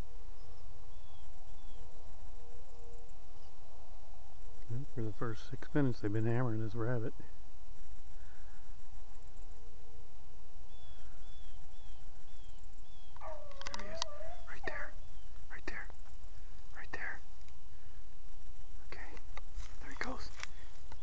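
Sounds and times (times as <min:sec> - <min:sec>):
dog baying: 0:13.2 - 0:14.8
dog yelps: 0:13.2 - 0:14.8.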